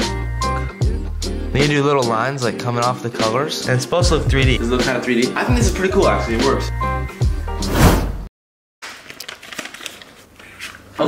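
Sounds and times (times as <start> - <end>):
music: 0.0 - 7.9.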